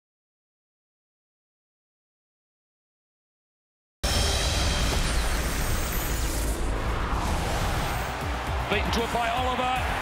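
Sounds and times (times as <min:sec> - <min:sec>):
soundtrack music: 0:04.0 - 0:10.0.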